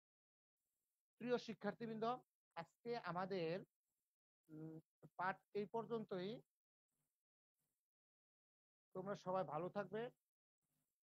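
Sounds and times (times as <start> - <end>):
man speaking: 1.2 - 3.7, 4.5 - 6.5, 9.0 - 10.2.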